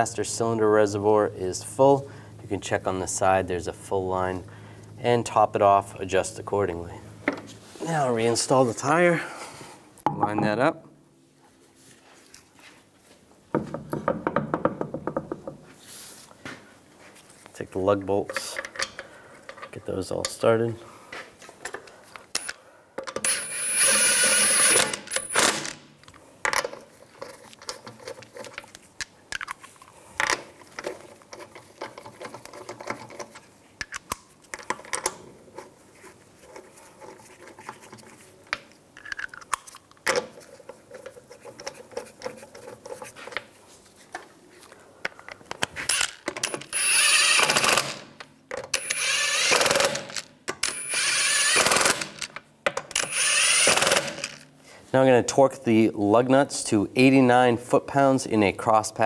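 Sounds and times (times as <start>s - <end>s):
impact wrench bursts: 23.2s - 25.8s, 45.9s - 48.1s, 48.8s - 52.3s, 53.0s - 54.4s.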